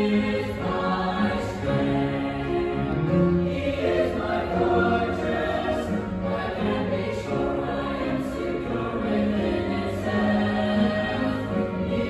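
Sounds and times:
choir singing in parts: 0.0 - 12.0
upright piano accompaniment: 0.0 - 12.0.

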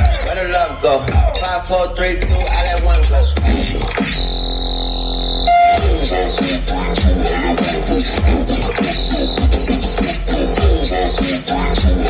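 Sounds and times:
hip hop beat: 0.0 - 12.0
loud electronic buzzing tone: 4.1 - 6.1.

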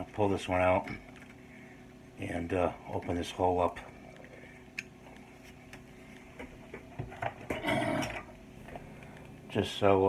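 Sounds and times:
person coughing: 7.5 - 8.2.

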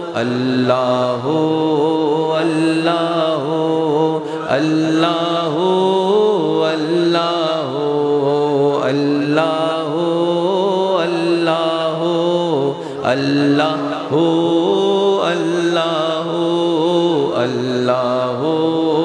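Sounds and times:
man chanting through loudspeaker: 0.0 - 19.0.

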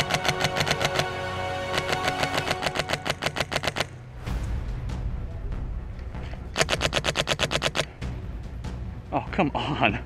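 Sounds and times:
airsoft gun rapid firing: 1.7 - 3.9, 6.6 - 7.9.

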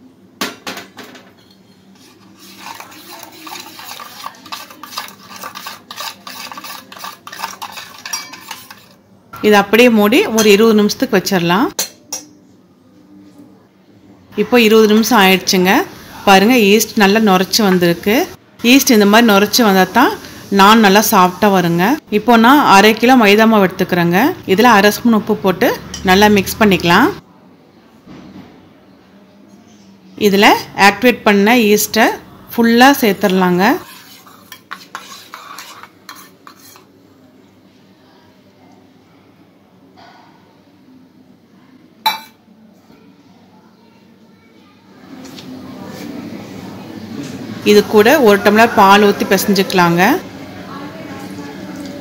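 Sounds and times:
spoon clinking on metal plate: 1.3 - 9.0, 33.2 - 36.9, 42.1 - 42.4.

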